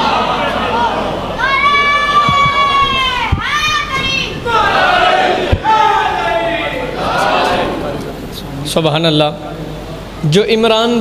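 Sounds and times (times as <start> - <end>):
crowd voices: 0.0 - 8.8.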